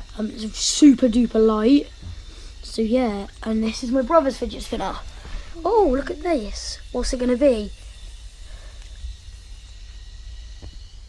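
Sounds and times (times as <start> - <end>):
low rumble with faint hiss: 0.0 - 11.0.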